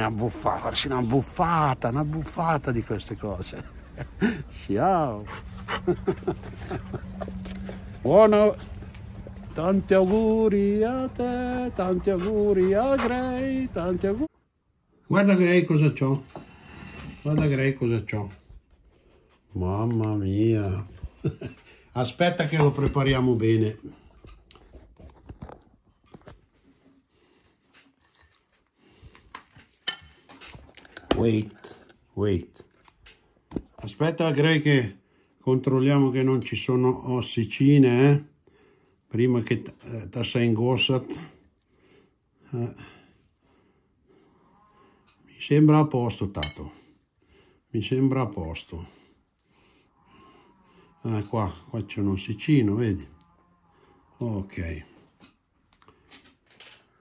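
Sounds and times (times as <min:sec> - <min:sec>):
small clicks and rustles: 0:24.0 - 0:33.8, 0:55.0 - 0:57.0.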